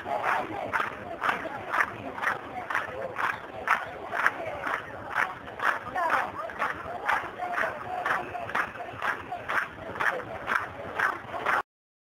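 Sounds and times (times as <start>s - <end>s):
crowd chanting: 0.0s - 11.6s
rhythmic clapping: 0.0s - 11.6s.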